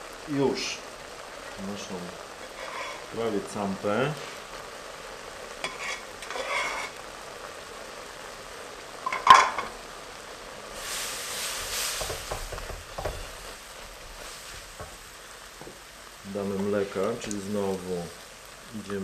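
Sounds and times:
food sizzling: 0:00.0 - 0:19.0
wooden spoon scraping a wok: 0:02.4 - 0:03.2, 0:05.6 - 0:07.1, 0:10.7 - 0:15.1.

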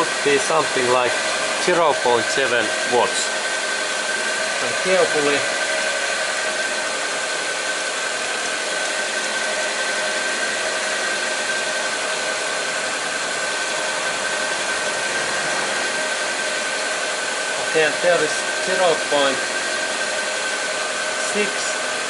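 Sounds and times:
car engine idling: 0:00.0 - 0:20.9
high whine: 0:00.0 - 0:22.0.

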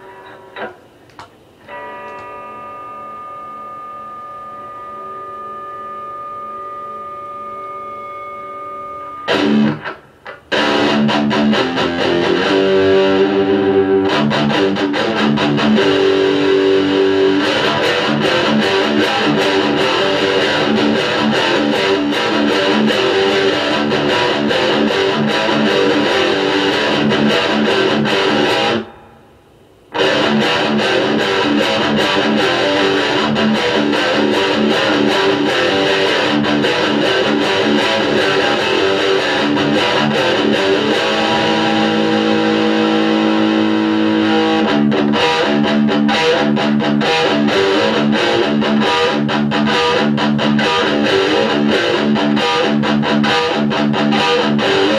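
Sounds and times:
distorted electric guitar: 0:00.0 - 0:00.9, 0:01.6 - 0:54.9.

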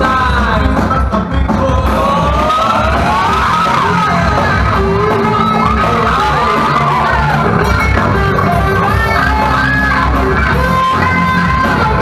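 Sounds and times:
live band playing: 0:00.0 - 0:12.0
pulsing bass beat: 0:00.0 - 0:12.0.

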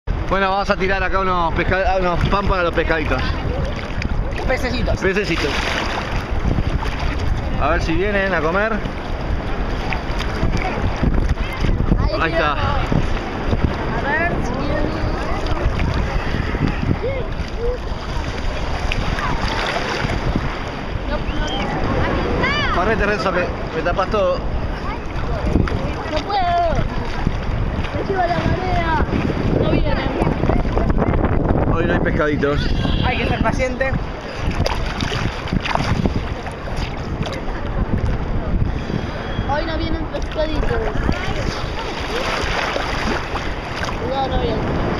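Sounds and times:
wind buffeting microphone: 0:00.1 - 0:44.9
water sloshing around legs: 0:01.9 - 0:07.6, 0:08.3 - 0:22.2, 0:24.6 - 0:31.2, 0:34.0 - 0:38.3, 0:40.0 - 0:44.3
small splashes: 0:02.0 - 0:07.5, 0:08.8 - 0:11.8, 0:15.2 - 0:20.8, 0:34.2 - 0:38.2, 0:40.2 - 0:44.1
faint voices: 0:02.8 - 0:23.8, 0:36.0 - 0:44.9.

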